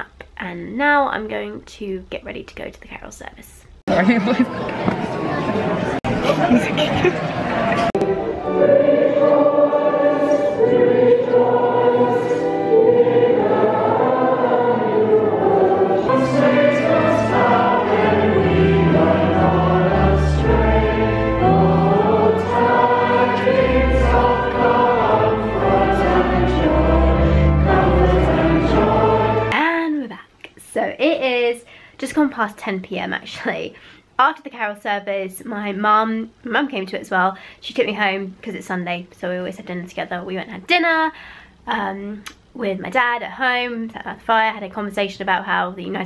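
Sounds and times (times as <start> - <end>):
congregation singing a carol: 5.6 - 29.6.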